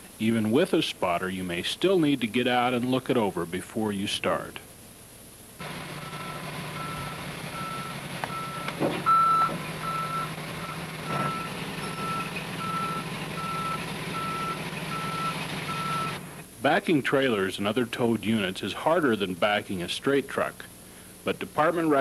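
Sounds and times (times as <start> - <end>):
truck engine running: 5.6 - 16.4
backup alarm beeping: 6.0 - 16.2.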